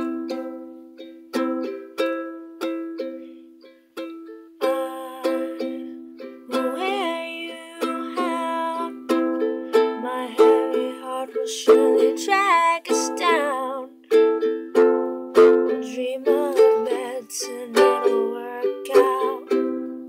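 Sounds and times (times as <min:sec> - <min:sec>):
ukulele strumming: 0:00.0 - 0:20.0.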